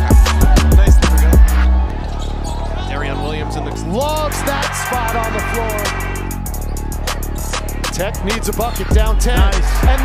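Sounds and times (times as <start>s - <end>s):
hip-hop music with heavy bass beat: 0.0s - 10.0s.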